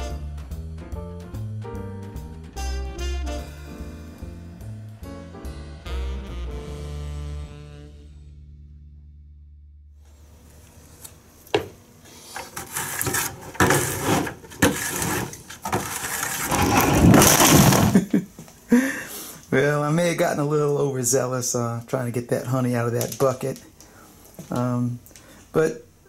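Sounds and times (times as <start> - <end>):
background music: 0.0 - 9.7
metal spoon scraping plastic pail: 12.3 - 18.0.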